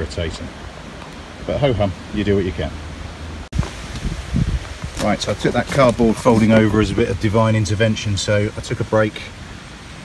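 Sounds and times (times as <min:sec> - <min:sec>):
wind buffeting microphone: 0:03.5 - 0:07.7
rustling: 0:03.6 - 0:07.2.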